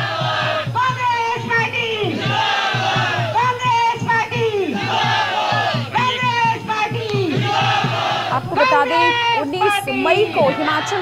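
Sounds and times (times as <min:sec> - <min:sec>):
crowd chanting in unison: 0:00.0 - 0:11.0
fast steady beat: 0:00.0 - 0:11.0.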